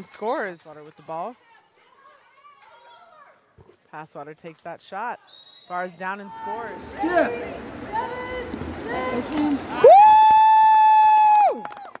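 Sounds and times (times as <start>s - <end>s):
voices: 5.0s - 10.0s.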